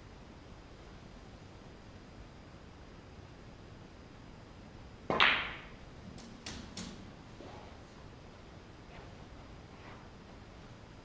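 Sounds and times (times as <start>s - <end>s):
snooker balls clicking: 5.1s - 7.8s.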